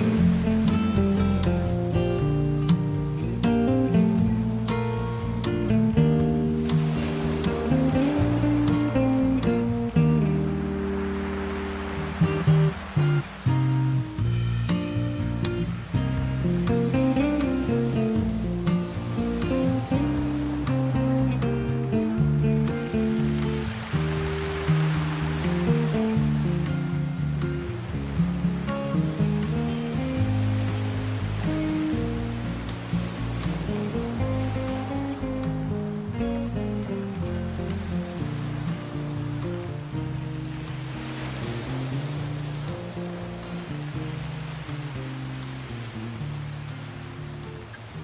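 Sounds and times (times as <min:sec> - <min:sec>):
classical guitar melody: 0:00.0 - 0:48.0
ocean waves on a beach: 0:00.0 - 0:48.0.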